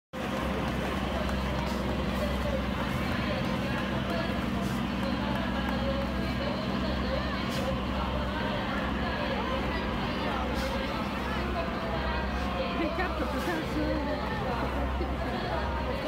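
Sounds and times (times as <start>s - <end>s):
people's voices: 0.2s - 16.0s
vehicle engines rumbling: 0.2s - 16.0s.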